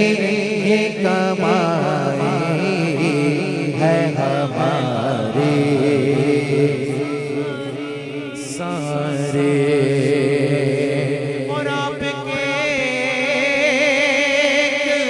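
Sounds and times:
male voices chanting a drone: 0.0s - 15.0s.

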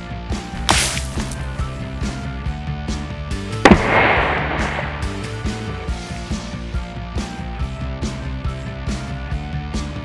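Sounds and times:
background music: 0.0s - 10.0s
hammer blow crack: 0.6s - 1.4s, 3.7s - 6.0s.

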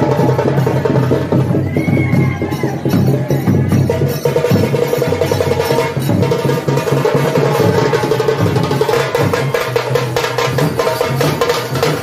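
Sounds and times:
fast loud drumming: 0.0s - 12.0s.

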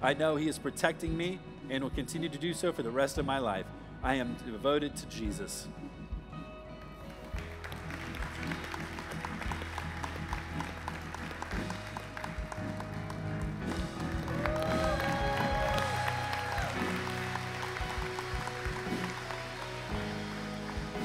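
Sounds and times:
crowd applauding and cheering: 7.0s - 21.0s.

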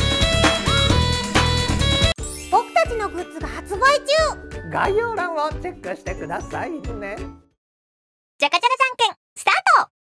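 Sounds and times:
rising sparkle sound effect: 2.2s - 3.7s
bright children's jingle: 2.2s - 7.4s
high-pitched cartoon voice speaking: 8.4s - 9.9s.

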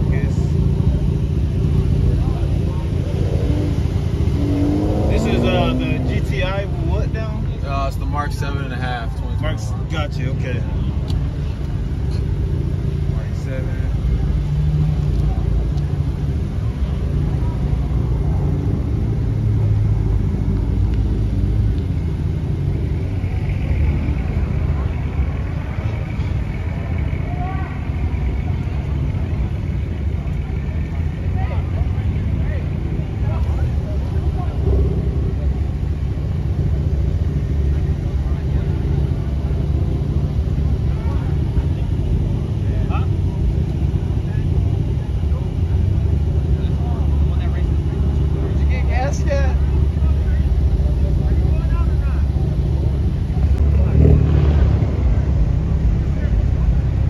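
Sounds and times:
people talking: 0.0s - 19.2s, 22.7s - 57.0s
car engines idling: 0.0s - 57.0s.

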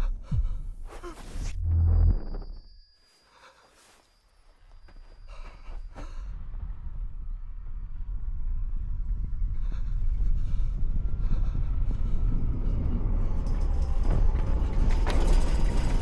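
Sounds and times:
low building rumble: 0.0s - 2.9s, 5.3s - 16.0s
high ringing tone: 1.6s - 6.4s.

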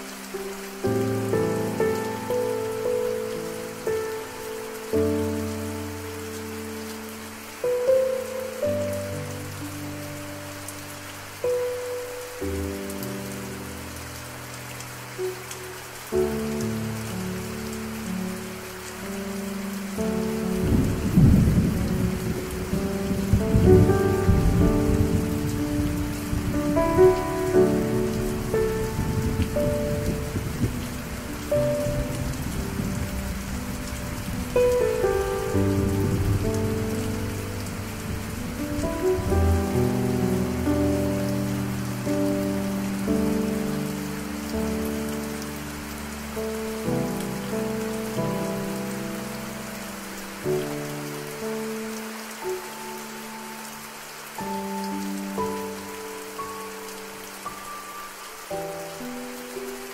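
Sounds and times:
piano music: 0.0s - 59.9s
steady rain: 0.0s - 59.9s
thunder rumble: 20.6s - 40.6s.

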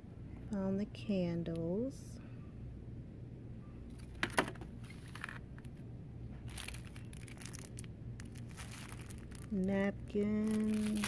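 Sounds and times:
faint low hum: 0.0s - 11.0s
cellophane crinkling: 3.9s - 5.8s, 6.4s - 11.0s.

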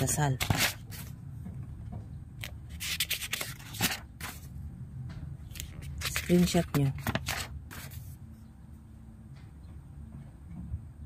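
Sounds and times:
paper pages rustling: 0.0s - 1.1s, 2.4s - 4.5s, 5.5s - 8.2s.

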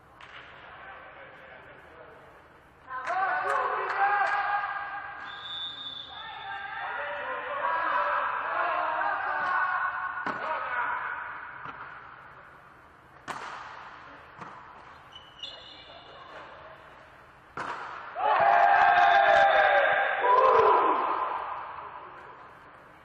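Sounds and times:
volleyball hits in echoing gym: 0.0s - 1.0s, 2.9s - 6.9s, 7.9s - 23.0s
voices shouting loudly: 18.2s - 21.8s.

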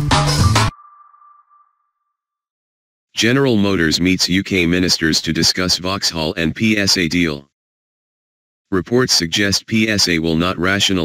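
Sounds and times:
electronic music with steady beat: 0.0s - 1.5s
high ringing ping: 0.7s - 2.2s.

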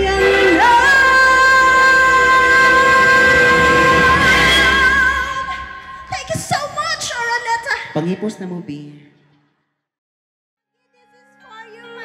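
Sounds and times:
woman singing through microphone: 0.0s - 6.6s, 11.0s - 12.0s.

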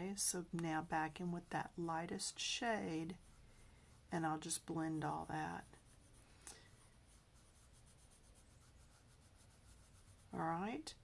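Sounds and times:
colored pencil scratching on paper: 0.0s - 11.0s.

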